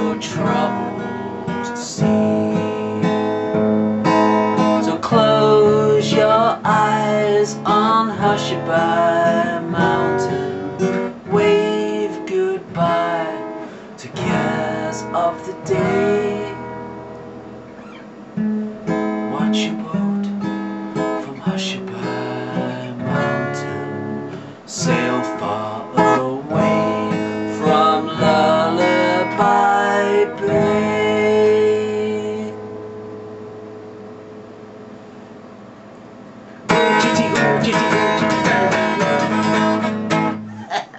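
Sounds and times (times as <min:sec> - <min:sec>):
person singing: 0:00.0 - 0:03.6, 0:04.5 - 0:16.8, 0:21.1 - 0:32.6, 0:36.7 - 0:40.9
acoustic guitar strumming chords: 0:00.0 - 0:40.9.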